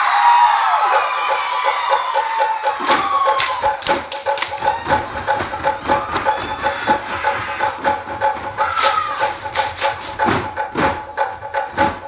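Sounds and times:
fast drum beat: 0.0 - 12.0
loud hand claps: 1.6 - 5.1, 8.6 - 11.0.

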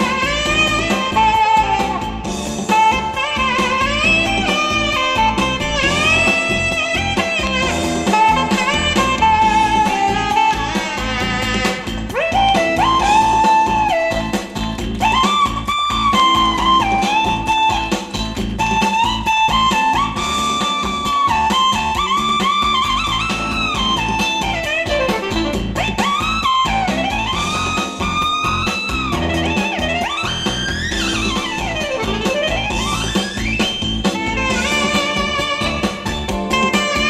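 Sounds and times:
band backing track: 0.0 - 37.0
electric guitar lead with bends: 0.0 - 37.0.

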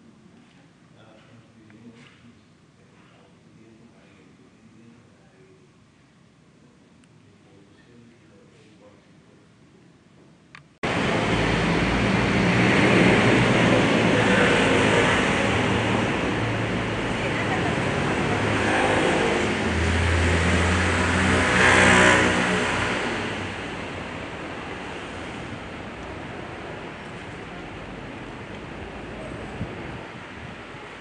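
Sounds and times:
outdoor noise wash: 0.0 - 31.0
indistinct voices: 13.4 - 20.0.

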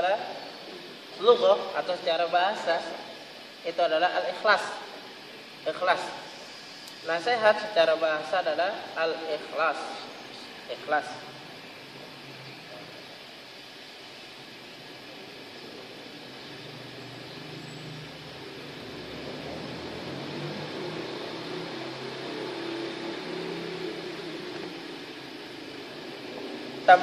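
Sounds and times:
steady hiss: 0.0 - 27.0
low motor hum: 14.0 - 27.0.

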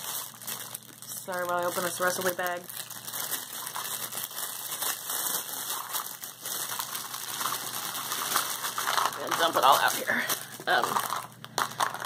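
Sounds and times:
plastic bag rustling: 0.0 - 12.0.

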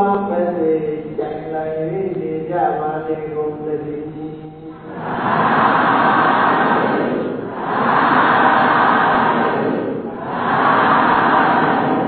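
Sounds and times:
rushing sound: 4.9 - 12.0.

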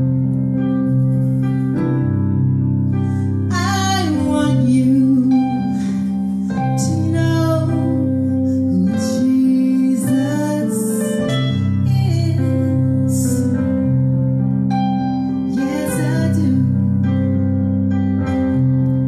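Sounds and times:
sustained keyboard chords: 0.0 - 19.0
woman singing gospel into microphone: 3.5 - 13.6, 15.5 - 17.0.

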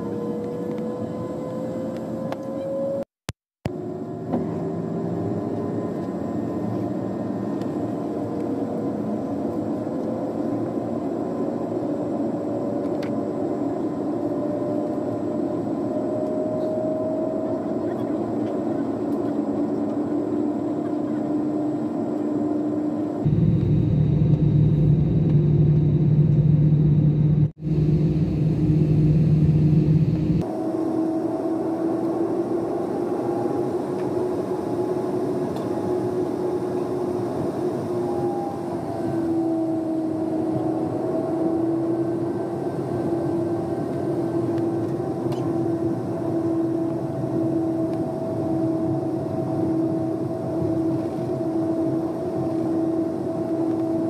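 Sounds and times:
jet engines whining: 3.7 - 54.0
deep engine rumble: 23.2 - 30.5.

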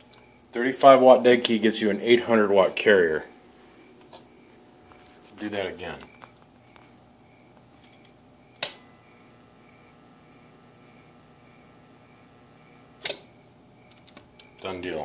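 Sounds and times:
faint steady carrier hum: 0.0 - 15.0
low steady fan noise: 0.0 - 15.0.

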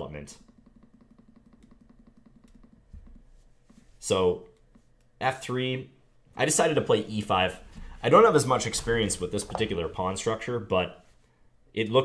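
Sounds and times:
computer mouse clicks: 0.4 - 3.8.

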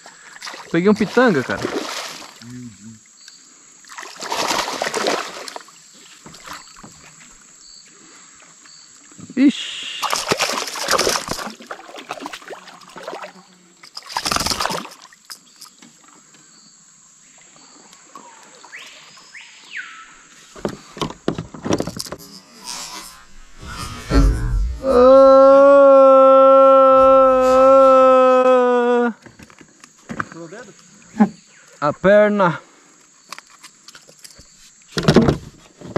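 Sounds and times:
fish splashing in water: 0.4 - 2.4, 3.8 - 5.7, 10.0 - 13.4, 14.0 - 15.2
loud steady tone: 22.2 - 25.3.

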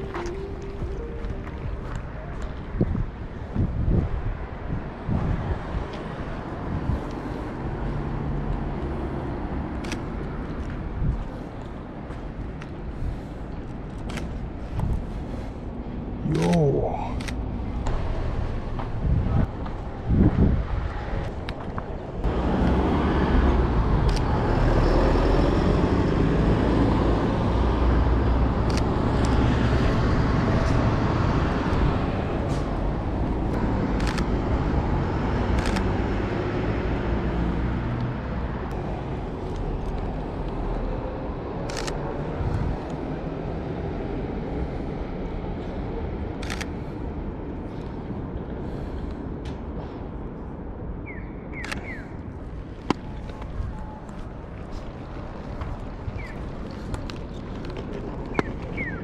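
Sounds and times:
street traffic: 0.0 - 59.0
vehicle low rumble: 0.0 - 59.0
camera shutter clicks: 16.3 - 16.5, 34.0 - 34.3, 35.6 - 35.9, 41.7 - 42.0, 46.4 - 46.7, 51.6 - 52.0.

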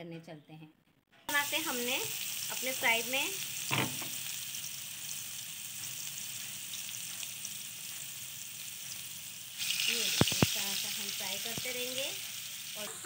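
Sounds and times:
patties sizzling in hot oil: 1.3 - 13.0.

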